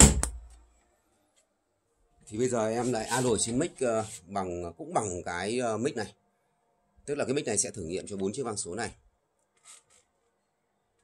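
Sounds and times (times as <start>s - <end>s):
faint brief rustle: 9.5s - 10.2s.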